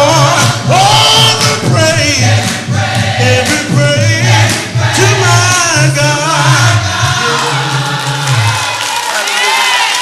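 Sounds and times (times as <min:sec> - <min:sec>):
male vocal group singing: 0:00.0 - 0:08.7.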